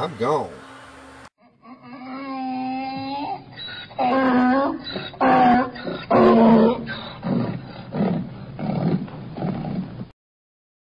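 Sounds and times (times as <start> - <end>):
donkey braying: 1.4 - 10.0.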